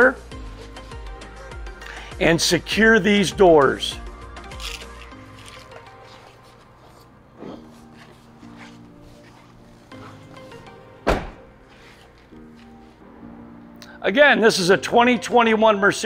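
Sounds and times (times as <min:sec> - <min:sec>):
background music: 0:00.0 - 0:16.0
van door being shut: 0:11.0 - 0:11.5.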